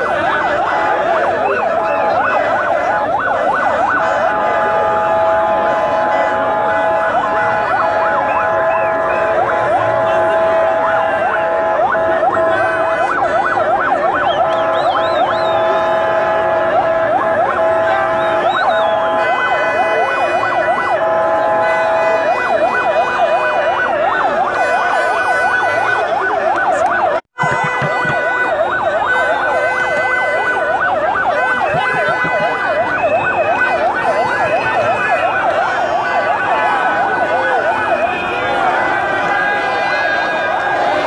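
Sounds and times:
sirens yelping: 0.0 - 41.0.

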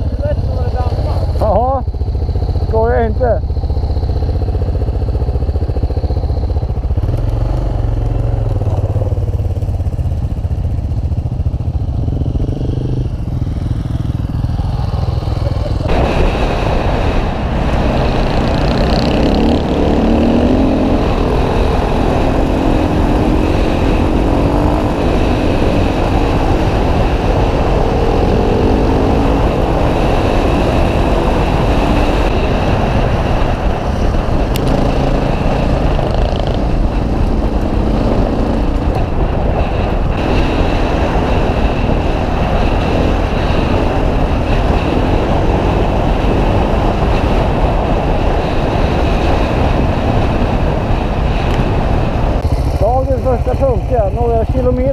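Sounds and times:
motorcycle engine: 0.0 - 54.9
wind noise: 0.0 - 54.9.

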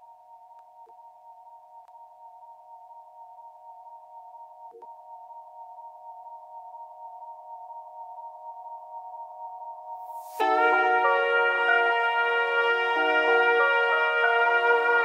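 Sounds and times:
sustained synthesizer chord: 10.4 - 15.0.

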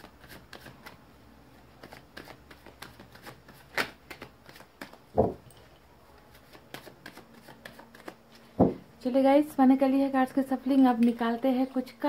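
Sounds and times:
cards being shuffled: 0.0 - 1.0, 1.6 - 5.3, 6.3 - 8.6
deck thumping on table: 4.8 - 5.4.

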